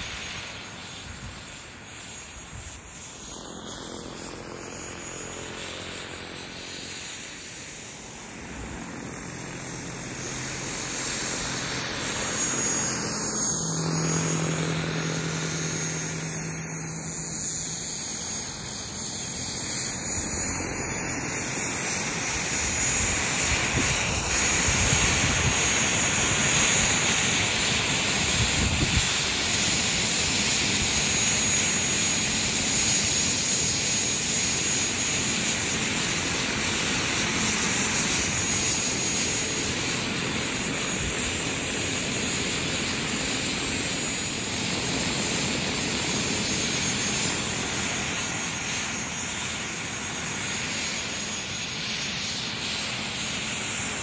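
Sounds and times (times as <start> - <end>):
helicopter rotor blades: 0.0 - 54.0
model helicopter turbine whine: 0.0 - 54.0.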